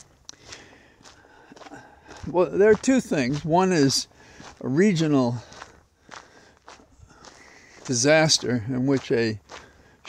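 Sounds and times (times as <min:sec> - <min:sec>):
faint footsteps: 0:00.0 - 0:10.0
man talking: 0:02.2 - 0:05.6, 0:07.8 - 0:09.6.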